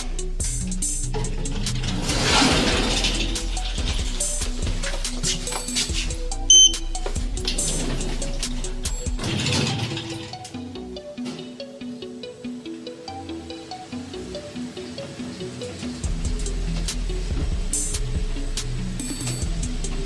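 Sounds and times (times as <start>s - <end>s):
music: 0.0s - 20.0s
loud high beep: 6.5s - 6.8s.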